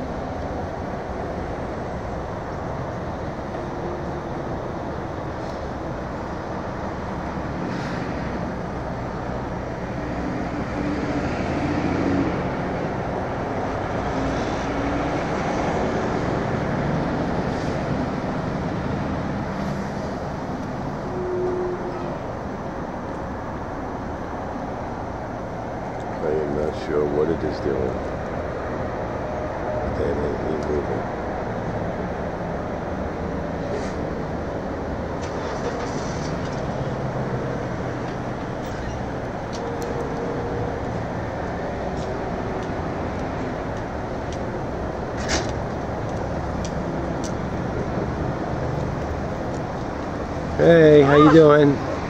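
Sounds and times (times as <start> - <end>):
road vehicle rumble: 0.0 - 52.0.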